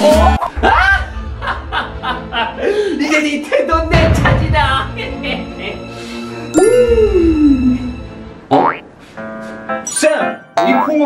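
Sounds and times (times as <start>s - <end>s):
cute background music: 0.0s - 11.0s
cartoon boing: 8.5s - 8.8s, 10.6s - 11.0s.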